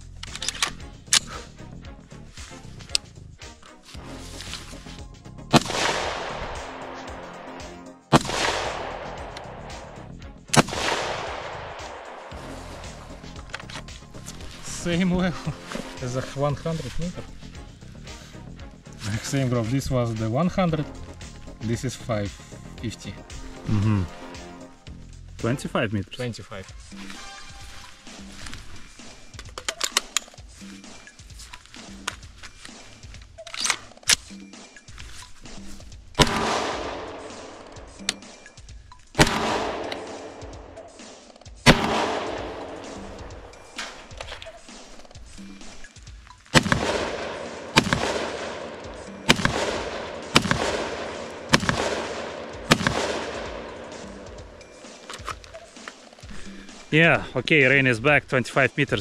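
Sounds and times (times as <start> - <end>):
rifle shots with echo: 5.5 - 13.5, 36.2 - 38.4, 39.2 - 45.1, 46.5 - 55.8.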